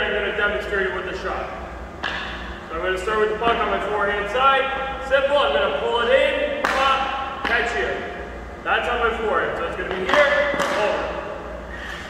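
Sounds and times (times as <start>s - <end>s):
hockey stick hitting puck: 2.0s - 2.4s, 6.6s - 7.8s, 9.8s - 11.2s.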